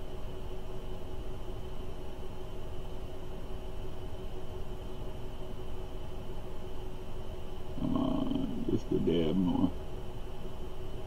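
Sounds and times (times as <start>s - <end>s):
steady background hum: 0.0s - 11.0s
wordless vocal hum: 7.7s - 9.8s.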